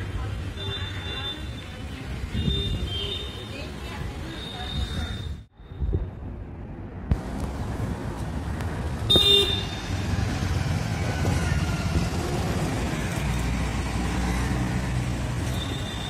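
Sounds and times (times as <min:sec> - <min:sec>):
street traffic rumble: 0:00.0 - 0:16.0.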